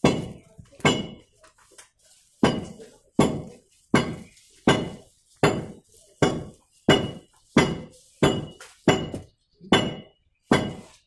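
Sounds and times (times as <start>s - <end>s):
hammer striking metal: 0.0s - 1.2s, 2.4s - 11.0s.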